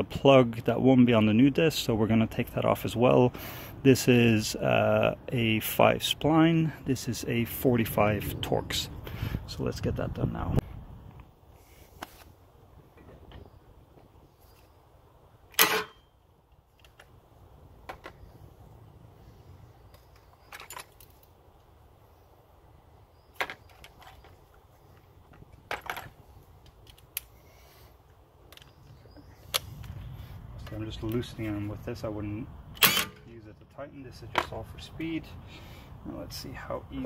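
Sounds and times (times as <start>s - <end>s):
tools clattering: 15.5s - 16.1s.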